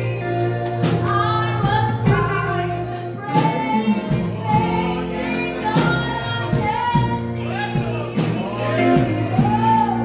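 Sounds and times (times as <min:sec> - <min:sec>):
church band playing: 0:00.0 - 0:10.0
gospel singing voices: 0:00.0 - 0:10.0.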